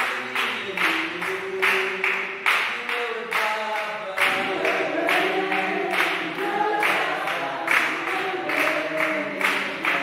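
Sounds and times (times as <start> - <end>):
group singing unaccompanied: 0.0 - 10.0
hand claps keeping time: 0.0 - 10.0.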